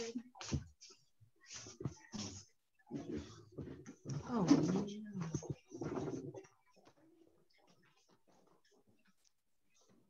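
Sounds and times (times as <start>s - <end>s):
muffled voice: 1.5s - 8.8s.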